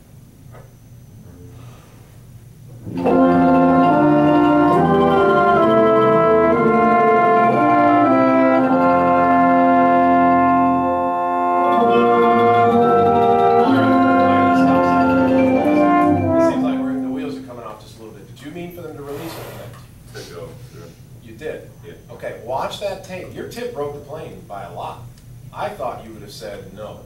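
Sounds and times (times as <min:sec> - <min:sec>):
ensemble playing held chords: 0:02.7 - 0:17.8.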